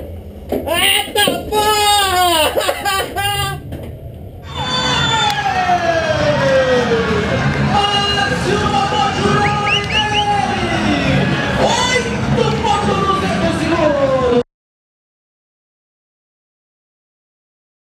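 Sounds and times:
steady low rumble: 0.0s - 14.4s
excited shouting voices: 0.8s - 3.6s, 4.4s - 13.3s
long falling yell: 1.4s - 3.6s, 4.4s - 12.1s
crowd yelling and cheering: 4.4s - 14.4s.

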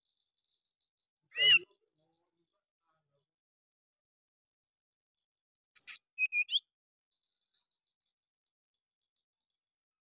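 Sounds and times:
soft bird twitter: 5.8s - 7.8s.

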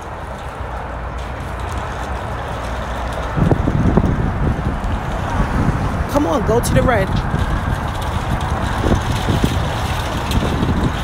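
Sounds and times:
plastic wheels rolling on concrete: 0.0s - 11.0s
steady low rumble: 0.0s - 11.0s.

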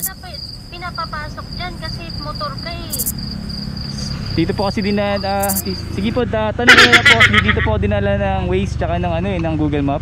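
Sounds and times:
faint conversation: 0.0s - 7.7s
insects chirping: 0.0s - 7.8s.

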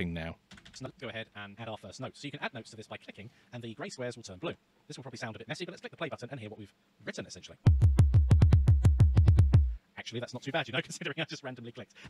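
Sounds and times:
deep synthesized drum hits: 7.7s - 9.8s.

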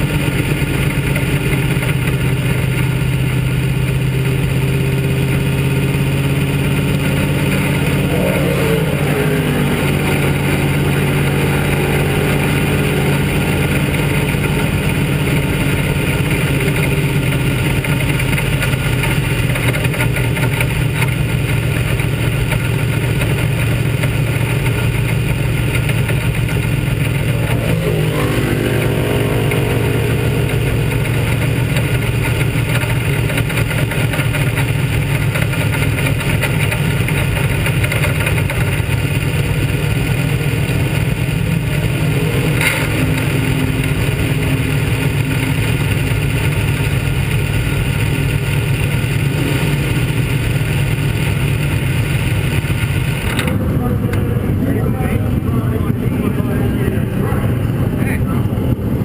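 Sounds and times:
race car engine running: 0.0s - 59.0s.

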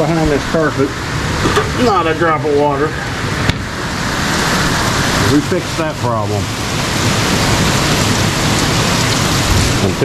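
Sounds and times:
heavy rain pouring: 0.0s - 10.0s.

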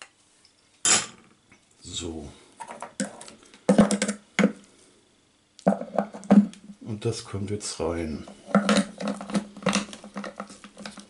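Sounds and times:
plastic knocks and clatter: 2.6s - 4.6s.

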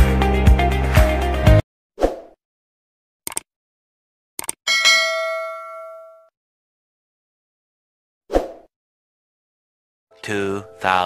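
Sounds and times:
notification bell ding: 4.7s - 6.3s.

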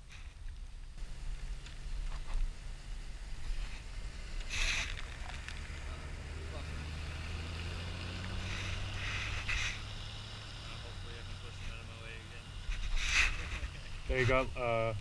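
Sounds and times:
traffic on a wet road: 1.0s - 15.0s.

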